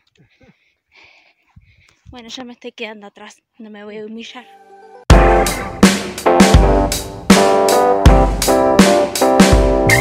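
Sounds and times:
faint breath puffs: 0.0 - 2.1.

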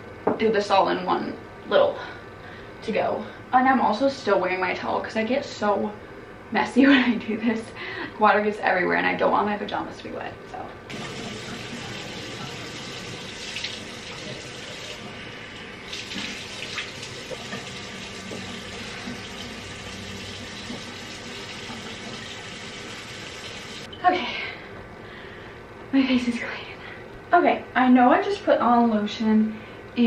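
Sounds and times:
sink tap running: 10.9 - 23.9.

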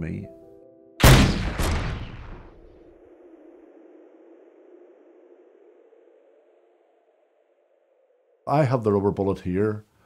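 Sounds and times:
gunshot echo: 1.0 - 2.8
faint steady drone: 1.0 - 10.0.

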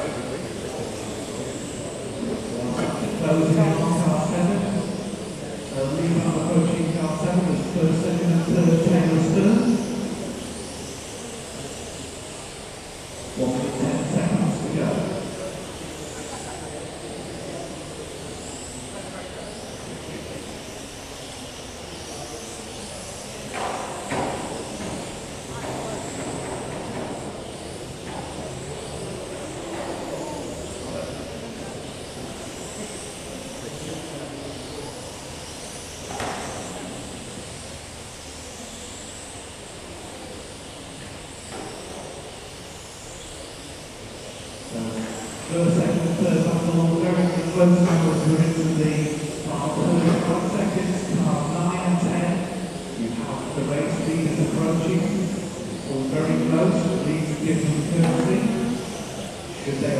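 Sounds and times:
hall background noise: 0.0 - 59.9
indistinct voices: 44.7 - 59.9.

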